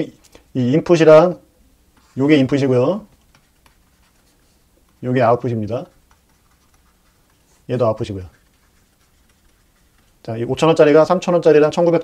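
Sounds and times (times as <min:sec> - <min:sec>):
stylus tapping and scratching: 0:03.0 - 0:10.7.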